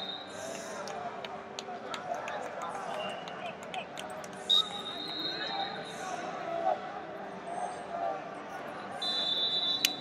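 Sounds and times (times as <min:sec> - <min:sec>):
crowd murmuring in hall: 0:00.0 - 0:10.0.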